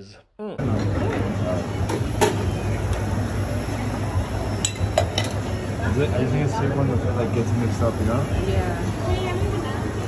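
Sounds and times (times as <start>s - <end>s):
shop noise hum: 0.0s - 10.0s.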